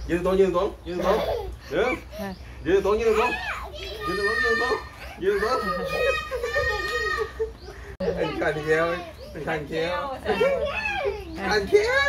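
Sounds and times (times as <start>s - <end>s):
child squealing and shouting: 3.0s - 7.5s, 10.3s - 12.0s.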